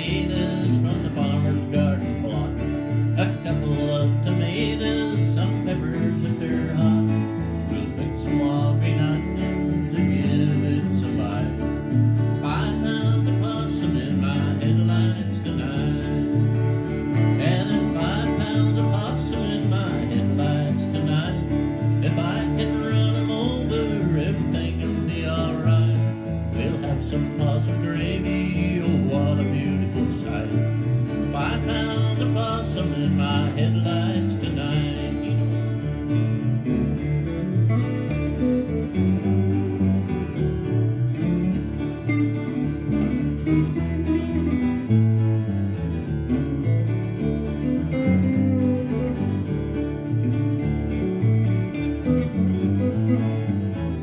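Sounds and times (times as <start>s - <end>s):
country band playing: 0.0s - 54.0s
repeating bass notes: 0.0s - 54.0s.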